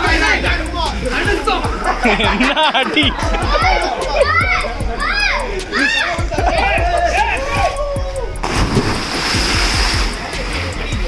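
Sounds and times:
music with steady beat: 0:00.0 - 0:11.0
big splash into water: 0:08.4 - 0:10.2.

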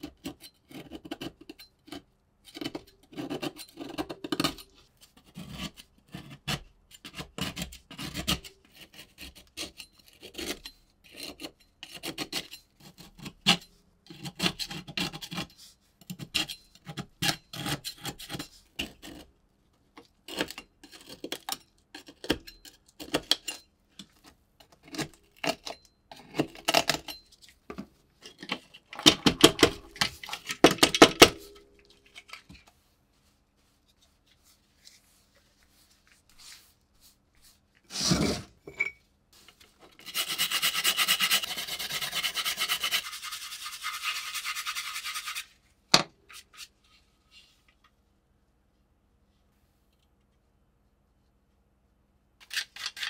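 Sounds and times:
scraper scraping rust off metal: 0:52.4 - 0:53.0.

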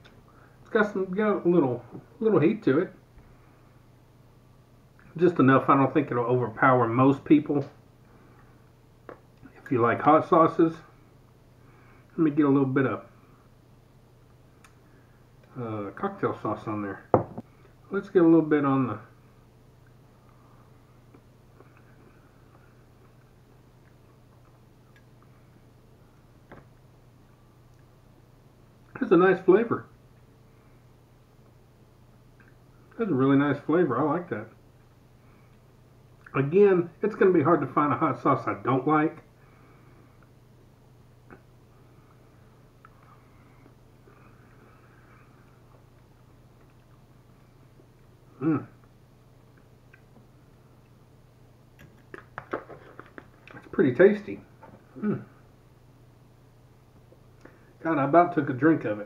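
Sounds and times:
low steady hum: 0:00.0 - 0:59.0
faint chewing: 0:21.0 - 0:25.6, 0:42.8 - 0:48.1.

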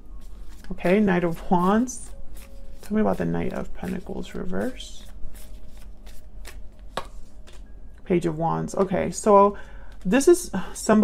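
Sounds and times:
cards being shuffled: 0:00.2 - 0:07.7.

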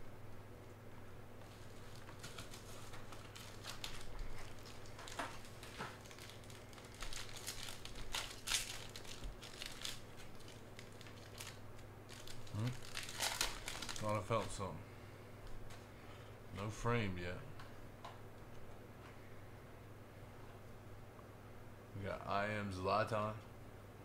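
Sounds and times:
foil wrapper crinkling and tearing: 0:01.4 - 0:14.6.

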